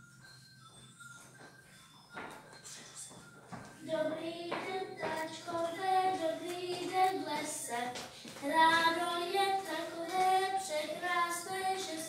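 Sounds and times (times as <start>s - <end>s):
children singing: 3.8s - 12.0s.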